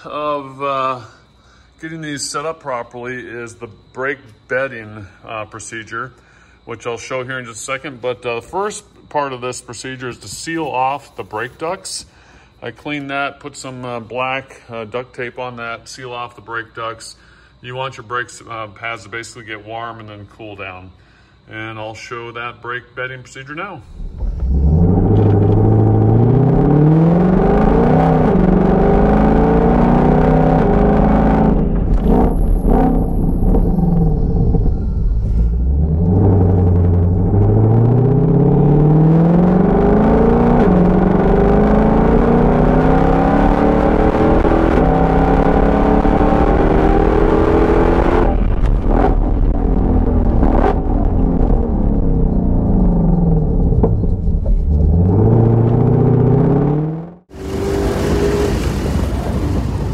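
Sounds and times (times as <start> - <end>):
car engine accelerating: 23.9 - 59.9.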